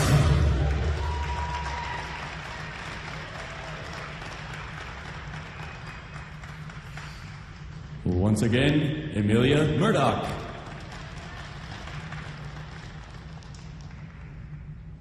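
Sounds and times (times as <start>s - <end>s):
audience applauding: 0.0s - 8.1s, 10.3s - 14.5s.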